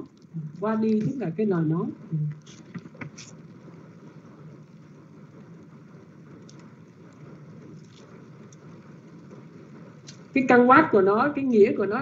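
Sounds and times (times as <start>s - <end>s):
background hum and hiss: 0.0s - 12.0s
faint clicks: 2.3s - 10.4s.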